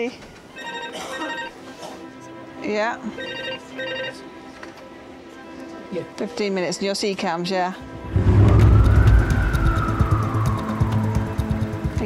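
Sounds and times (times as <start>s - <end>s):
background music: 0.0s - 12.0s
telephone ringing: 0.5s - 1.6s, 3.1s - 4.2s.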